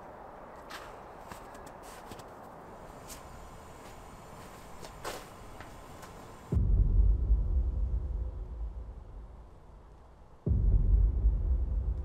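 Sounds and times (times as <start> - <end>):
footsteps crunching in snow: 0.4 - 6.4.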